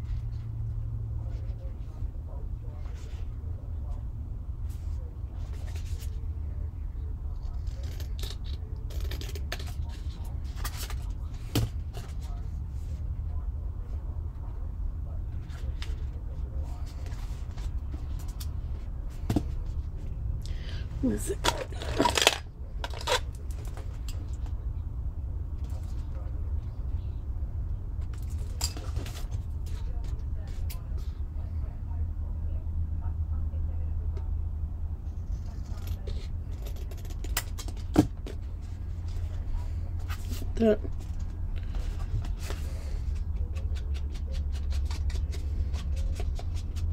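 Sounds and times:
steady low hum: 0.0s - 46.9s.

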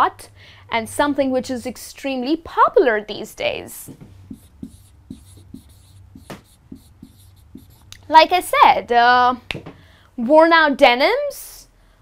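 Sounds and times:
marker writing on whiteboard: 4.0s - 8.4s.

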